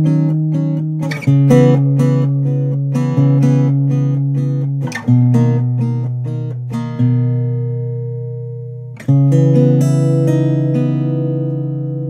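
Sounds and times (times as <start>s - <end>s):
acoustic guitar picked chords: 0.0s - 12.0s.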